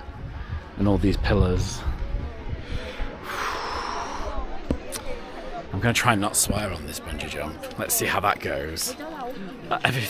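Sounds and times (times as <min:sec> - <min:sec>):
wind buffeting microphone: 0:00.0 - 0:04.7
breathy rush of noise: 0:01.8 - 0:05.7.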